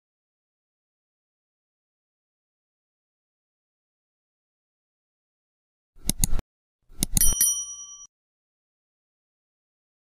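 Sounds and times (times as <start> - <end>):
small bell ringing: 7.2 - 8.1.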